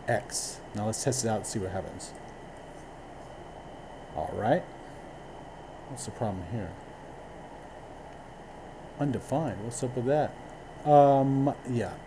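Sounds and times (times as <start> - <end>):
room tone hiss and hum: 0.0 - 12.0.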